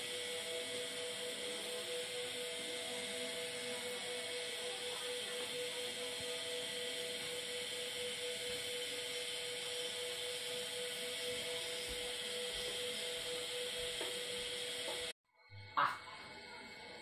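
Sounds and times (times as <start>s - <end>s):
humming tone: 0.0s - 17.0s.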